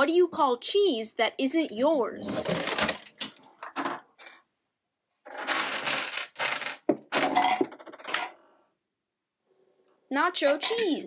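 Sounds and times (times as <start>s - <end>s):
contraption pieces clattering: 5.3s - 8.4s.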